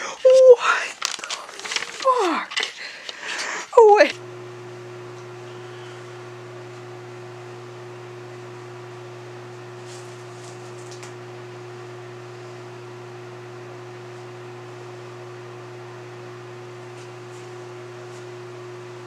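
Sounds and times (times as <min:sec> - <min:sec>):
steady low hum: 0:04.0 - 0:19.0.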